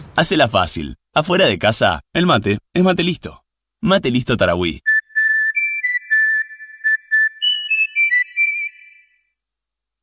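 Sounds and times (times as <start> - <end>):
whistled melody: 4.9 - 9.2.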